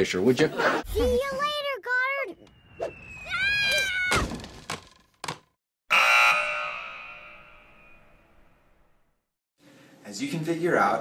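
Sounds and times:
loud ringing tone: 5.9 - 8.3.

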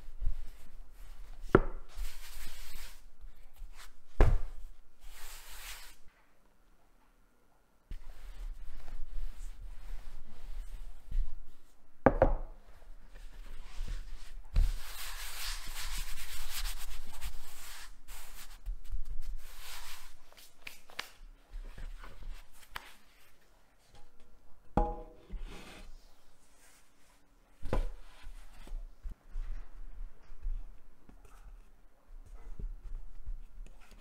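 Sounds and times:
hands rubbing floured dough: 1.9 - 4.0, 5.0 - 6.1, 7.9 - 11.8, 12.7 - 23.4
rolling pin knocking on wood: 24.8 - 25.2.

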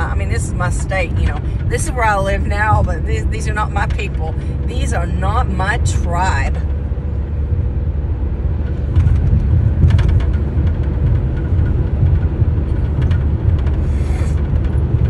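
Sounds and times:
car road and engine rumble: 0.0 - 15.0.

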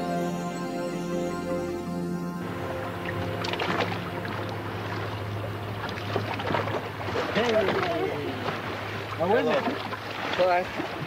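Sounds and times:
steady low hum: 0.0 - 10.1
sea water sloshing against boat: 2.7 - 11.0.

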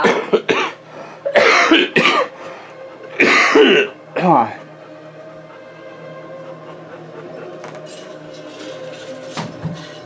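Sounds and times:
person coughing: 0.0 - 2.4, 3.2 - 4.0.

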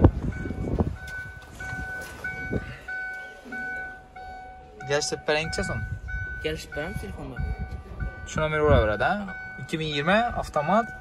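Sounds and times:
car warning chime beeping: 0.0 - 11.0.

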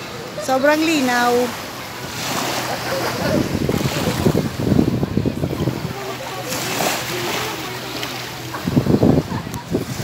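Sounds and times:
faint far-off voices: 0.0 - 10.0
wind and sea hiss: 0.0 - 10.0
wind buffeting microphone: 1.0 - 10.0.

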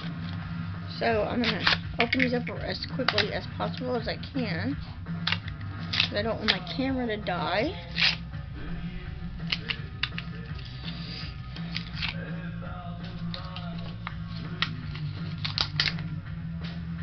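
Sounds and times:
background music: 0.0 - 17.0
low background hum: 0.0 - 17.0.

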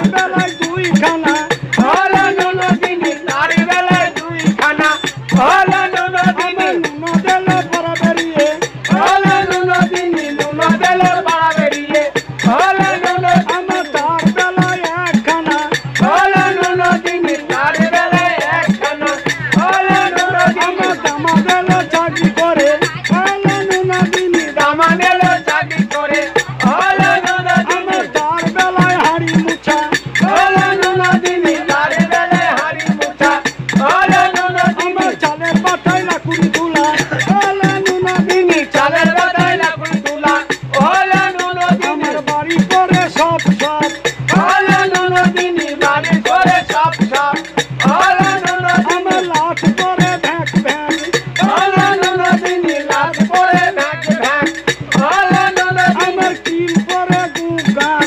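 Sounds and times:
barrel drum beaten quickly: 0.0 - 58.0
man singing folk song: 0.0 - 58.0.

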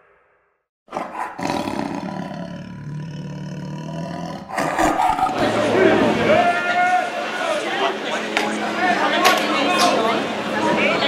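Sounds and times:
roaring sound effect: 0.0 - 6.5
voices outdoors: 4.5 - 11.0.

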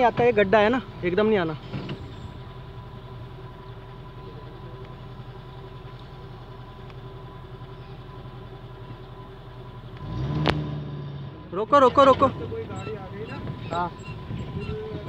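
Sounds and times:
vehicle engine idling and revving: 0.0 - 15.0.

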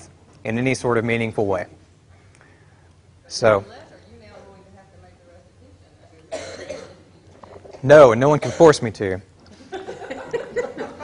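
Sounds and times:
man speaking: 0.0 - 1.8, 3.3 - 3.7, 7.8 - 9.3
person coughing: 6.3 - 7.0, 8.4 - 8.8.

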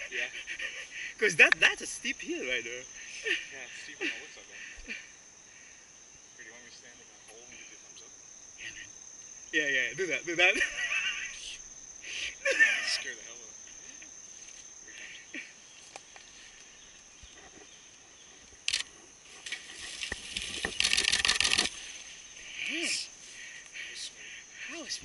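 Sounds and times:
high-pitched insect drone: 0.0 - 25.0
rapid scraping rustling burst: 18.7 - 22.2.

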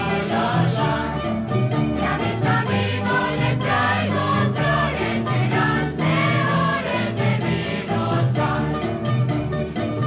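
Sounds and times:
choir singing with music: 0.0 - 10.0.

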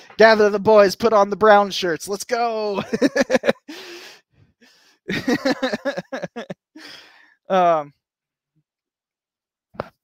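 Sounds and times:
man laughing: 2.6 - 4.2, 5.1 - 7.1
gasping in-breath: 3.7 - 5.1, 6.7 - 7.5.

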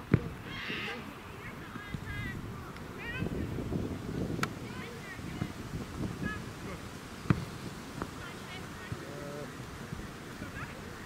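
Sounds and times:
football kick thud: 0.0 - 0.4, 7.2 - 8.2
distant voices: 0.0 - 11.0
birds chirping: 6.2 - 11.0.

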